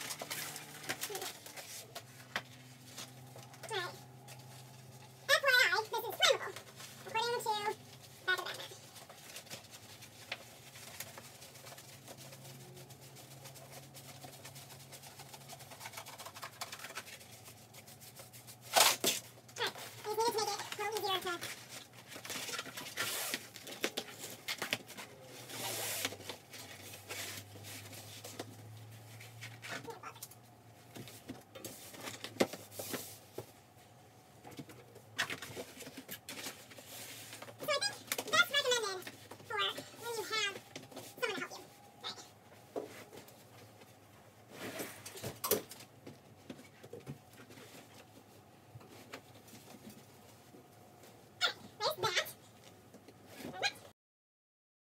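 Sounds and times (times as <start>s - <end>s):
sheets rustling: 0.0s - 30.2s.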